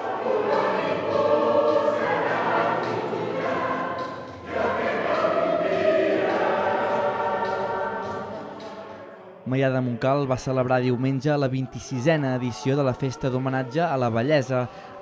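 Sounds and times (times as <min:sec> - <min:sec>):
mixed choir singing: 0:00.0 - 0:15.0.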